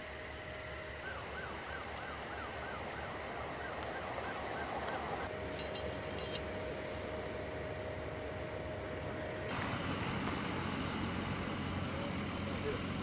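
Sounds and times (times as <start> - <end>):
vehicles idling: 0.0 - 13.0.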